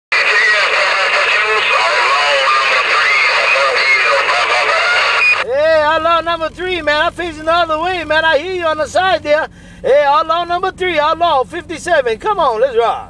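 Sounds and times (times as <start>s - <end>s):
clear voice: 0.1s - 5.1s
radio static hiss: 0.1s - 5.4s
man's voice over radio speaker: 0.1s - 13.0s.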